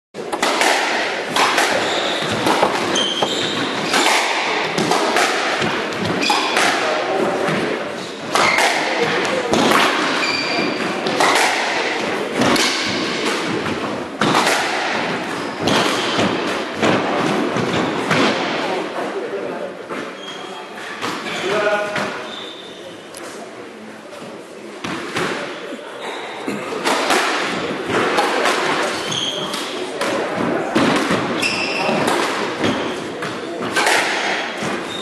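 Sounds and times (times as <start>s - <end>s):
squash ball hits echoing: 0.2s - 18.8s, 26.7s - 35.0s
shoes squeaking on wooden floor: 1.7s - 4.1s.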